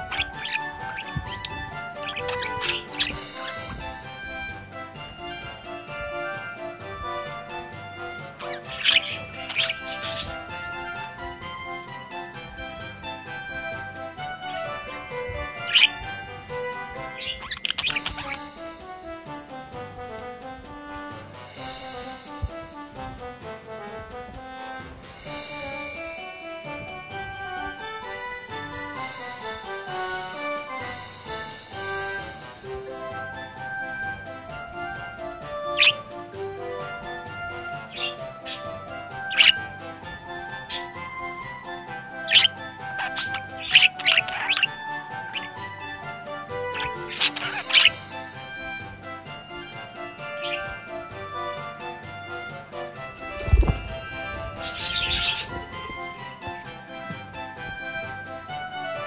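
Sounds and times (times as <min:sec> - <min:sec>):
budgerigar chirping: 0:00.0 - 0:04.5, 0:05.1 - 0:11.4, 0:14.3 - 0:18.6, 0:34.8 - 0:36.1, 0:36.8 - 0:48.8, 0:49.6 - 0:51.7, 0:53.6 - 0:56.4
background music: 0:00.0 - 0:59.0.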